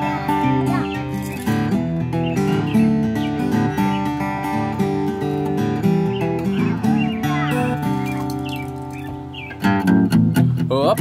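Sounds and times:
birds chirping: 0:00.0 - 0:10.4
acoustic guitar picking: 0:00.0 - 0:11.0.

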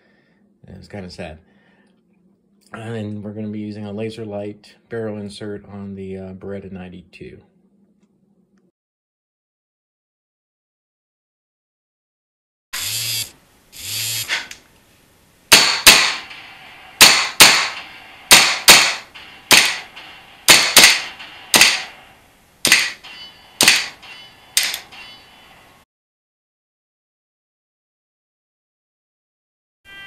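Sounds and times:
sharp gunshot-like cracks: 0:15.5 - 0:22.0, 0:22.6 - 0:24.8.

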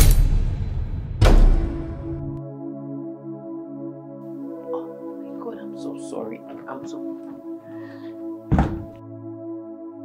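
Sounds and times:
soft synthesizer music: 0:02.0 - 0:10.0
door slamming: 0:08.5 - 0:09.0.

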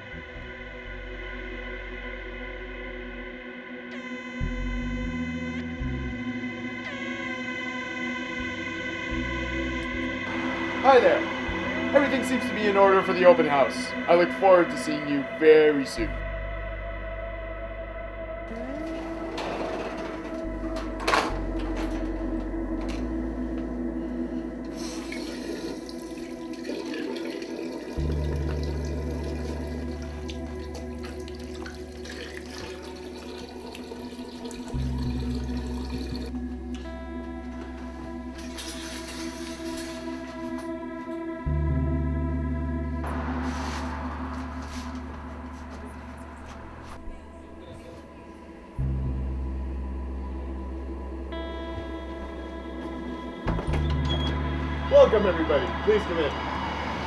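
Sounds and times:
low droning music: 0:00.0 - 0:57.0
hands washing under water: 0:24.7 - 0:36.3
tap water running into sink: 0:24.8 - 0:36.3
sudden musical hit: 0:41.6 - 0:47.6.

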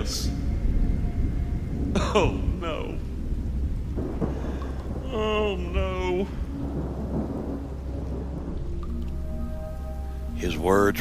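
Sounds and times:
deep rumble of thunder: 0:00.0 - 0:09.6
rain: 0:00.0 - 0:11.0.

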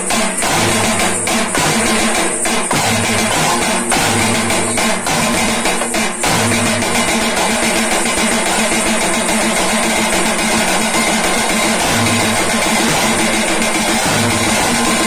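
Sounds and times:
drums played fast with sticks: 0:00.0 - 0:15.0.

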